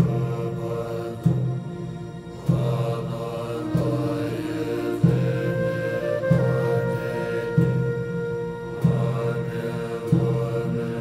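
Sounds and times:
low chanted mantra: 0:00.0 - 0:11.0
sustained musical tones: 0:00.0 - 0:11.0.

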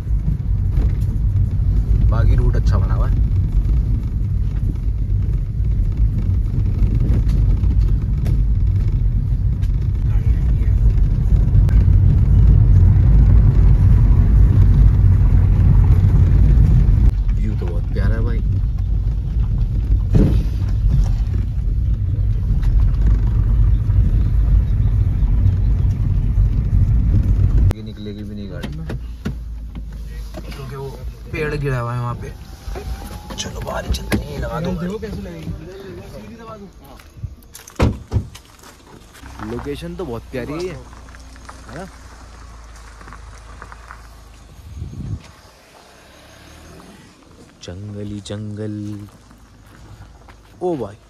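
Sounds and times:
car cabin road and engine rumble: 0:00.0 - 0:51.0.

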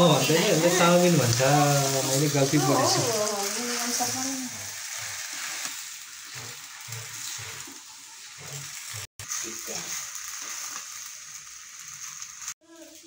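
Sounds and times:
noodles sizzling in a wok: 0:00.0 - 0:13.0.

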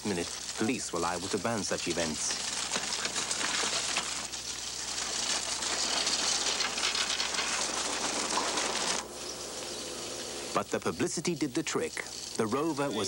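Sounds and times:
bicycles rattling over dirt: 0:00.0 - 0:09.1.

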